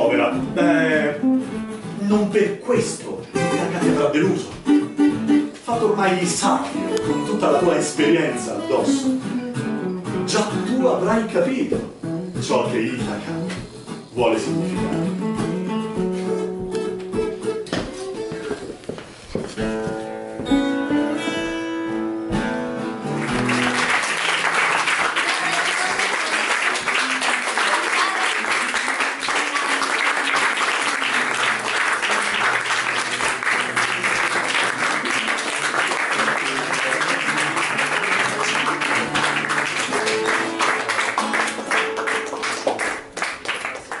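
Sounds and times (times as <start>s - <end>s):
acoustic guitar notes: 0.0s - 44.0s
audience applauding: 23.1s - 44.0s.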